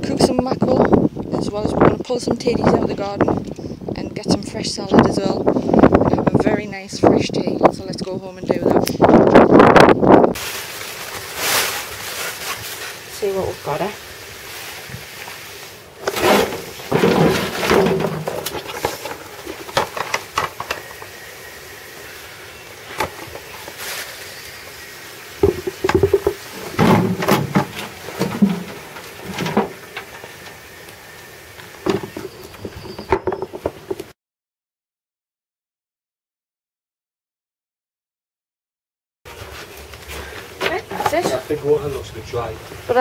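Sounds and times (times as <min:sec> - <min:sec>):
soil and roots tumbling: 0:10.3 - 0:34.1
bucket knocking against wheelbarrow: 0:16.0 - 0:21.0, 0:25.4 - 0:30.4.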